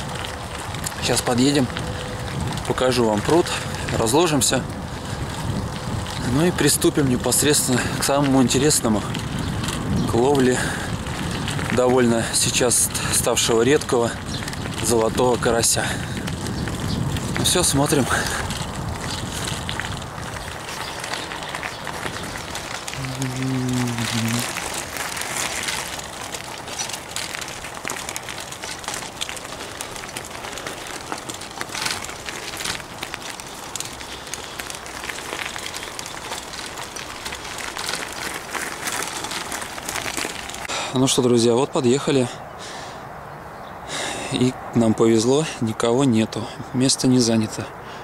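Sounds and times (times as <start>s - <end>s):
bicycle tyres on gravel: 0.0s - 48.0s.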